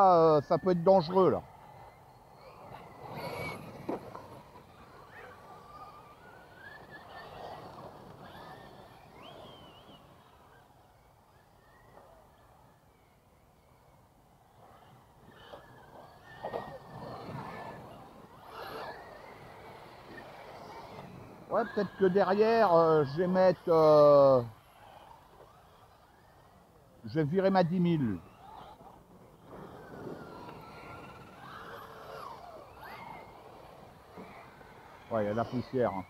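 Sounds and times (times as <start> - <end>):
electric motors whining: 0.0 - 36.0
tyres scrabbling on dirt: 28.2 - 36.0.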